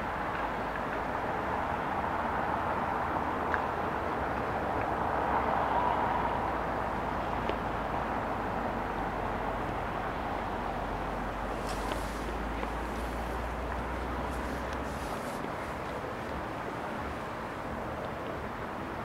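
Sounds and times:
distant town traffic: 0.0 - 19.0.

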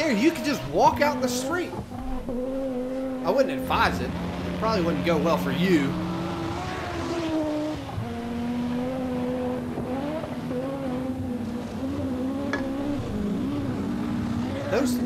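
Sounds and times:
rally car engines passing: 0.0 - 15.0.

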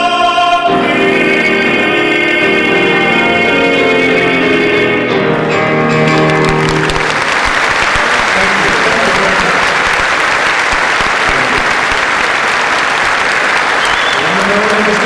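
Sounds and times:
large audience applauding: 5.9 - 15.0.

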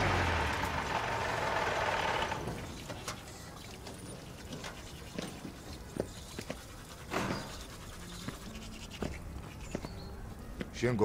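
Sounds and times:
toothbrush scrubbing teeth: 4.2 - 9.8.

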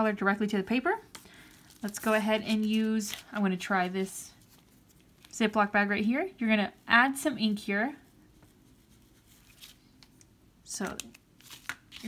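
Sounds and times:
plastic bag crinkling: 1.3 - 5.4, 10.8 - 12.0.

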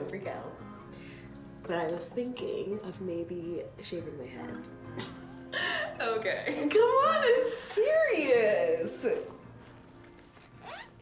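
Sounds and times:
bag zipper opening: 9.7 - 11.0.

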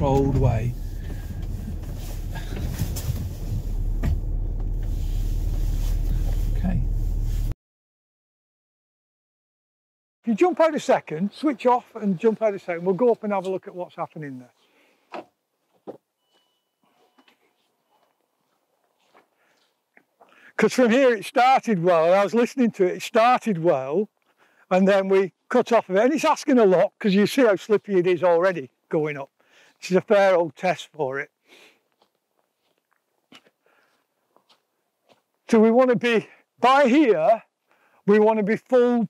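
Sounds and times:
faint rustles: 0.0 - 7.5, 14.4 - 20.3
faint footsteps on wet mud: 17.2 - 20.6, 31.4 - 35.8.

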